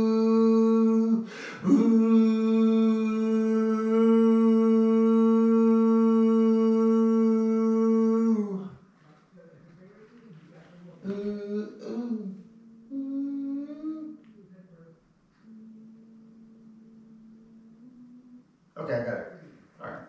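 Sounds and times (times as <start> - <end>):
person singing held ooh: 0.0 - 8.9, 11.0 - 14.3, 15.4 - 18.6
quiet vocal phrases: 0.0 - 20.0.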